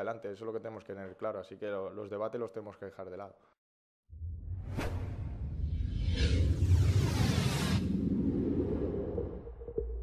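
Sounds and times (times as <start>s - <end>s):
deep rumble: 4.1s - 10.0s
sweeping whoosh: 4.4s - 9.8s.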